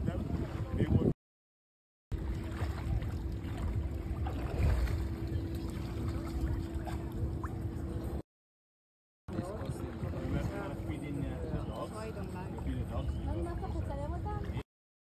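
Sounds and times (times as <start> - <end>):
wind noise on microphone: 0.0 - 1.2, 2.2 - 8.2
steady hum: 2.2 - 8.2.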